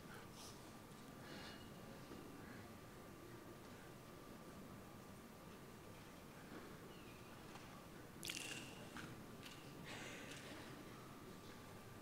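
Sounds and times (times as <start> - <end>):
faint noise near microphone: 0.0 - 12.0.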